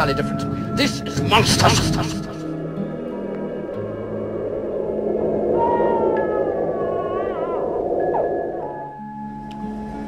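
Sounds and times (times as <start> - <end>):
low sustained music: 0.0 - 10.0.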